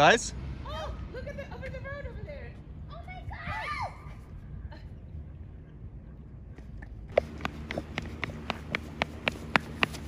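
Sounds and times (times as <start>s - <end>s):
faint outdoor background noise: 0.0s - 10.0s
footsteps on asphalt: 6.6s - 10.0s.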